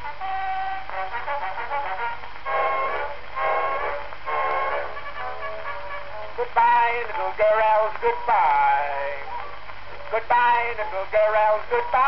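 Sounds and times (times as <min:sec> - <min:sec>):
brass-led orchestral music: 0:00.0 - 0:06.3.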